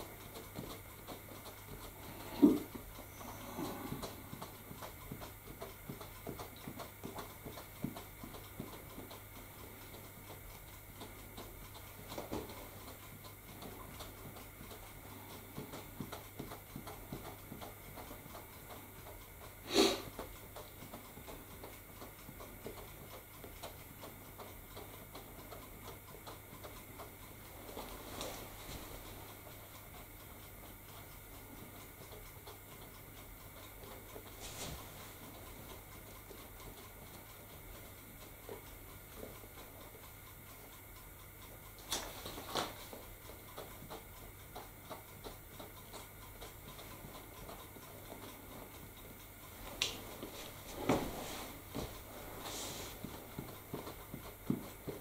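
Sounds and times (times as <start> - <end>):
small taps and rustles from hands: 49.6 - 55.0.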